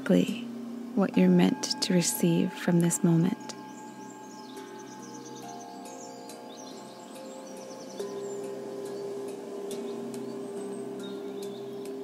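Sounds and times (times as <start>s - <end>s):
ambient synth music: 0.0s - 12.0s
birds chirping: 0.0s - 12.0s.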